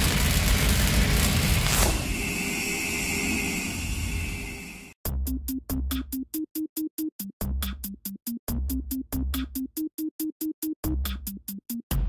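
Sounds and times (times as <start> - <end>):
steady high hum: 2.0 - 5.0.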